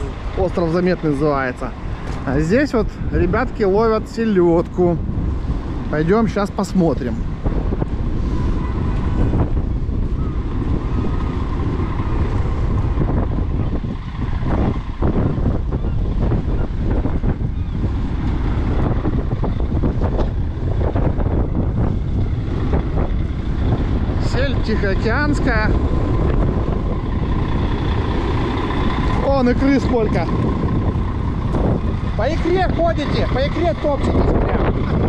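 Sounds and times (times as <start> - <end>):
diesel engine running: 0.0 - 35.0
wind buffeting microphone: 0.0 - 35.0.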